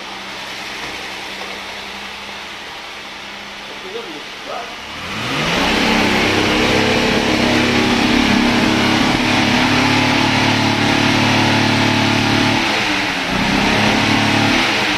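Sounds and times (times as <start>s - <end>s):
car engine revving: 4.3s - 14.9s.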